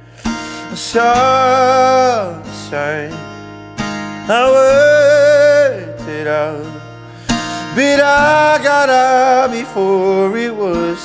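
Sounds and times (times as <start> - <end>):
acoustic guitar: 0.0 - 11.0
man singing: 0.2 - 3.4, 4.0 - 11.0.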